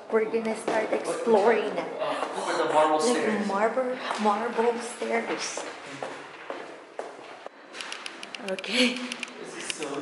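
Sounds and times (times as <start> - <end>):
footsteps on marble stairs: 5.2 - 9.1.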